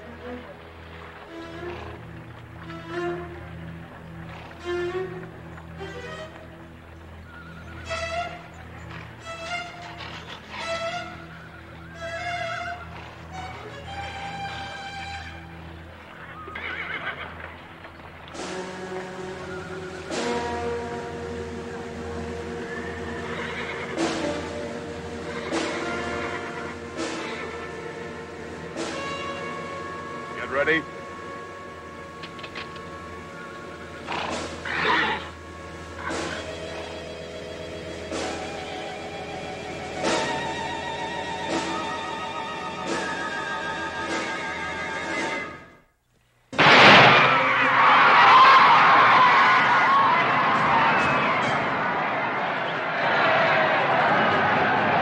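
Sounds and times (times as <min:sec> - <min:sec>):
horses whinnying: 0:00.0 - 0:39.3, 0:46.8 - 0:55.0
held string notes: 0:00.0 - 0:45.9
horse whinnying: 0:09.2 - 0:15.4, 0:16.1 - 0:17.8, 0:22.4 - 0:29.9, 0:32.2 - 0:35.4, 0:36.0 - 0:37.1.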